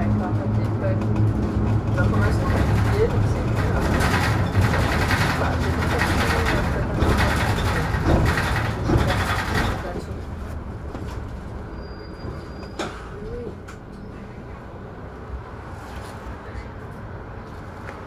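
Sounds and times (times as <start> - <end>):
bus engine and road rumble: 0.0 - 18.0.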